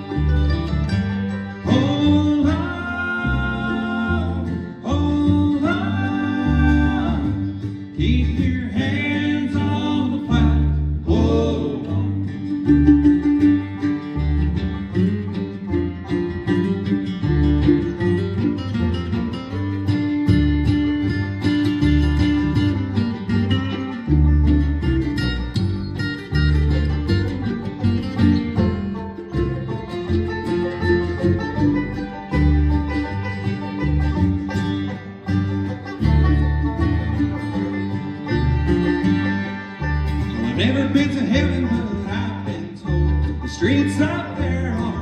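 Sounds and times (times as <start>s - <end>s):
acoustic guitar: 0.0s - 45.0s
banjo: 0.0s - 45.0s
fiddle: 0.0s - 45.0s
mandolin: 0.0s - 45.0s
upright bass line: 0.0s - 45.0s.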